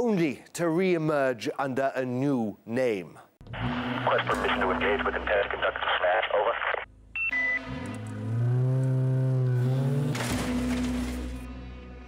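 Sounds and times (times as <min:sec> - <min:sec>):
radio-like voice chatter: 0:03.9 - 0:06.9.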